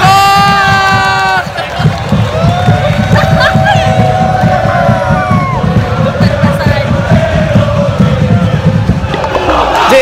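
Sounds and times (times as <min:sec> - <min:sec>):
crowd cheering: 0:00.0 - 0:10.0.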